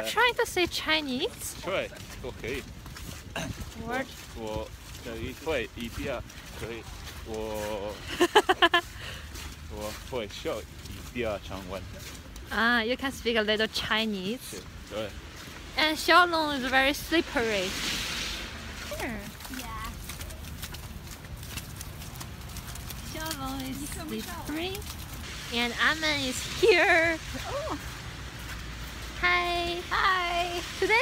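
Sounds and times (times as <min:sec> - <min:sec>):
footsteps crunching on icy slush: 0:00.0 - 0:31.0
wind rumbling on microphone: 0:01.3 - 0:08.1.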